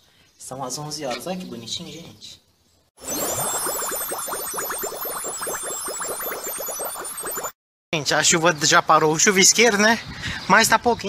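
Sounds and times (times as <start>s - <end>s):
high twinkling tones: 3.0s - 7.6s
quick rising blips: 3.0s - 7.6s.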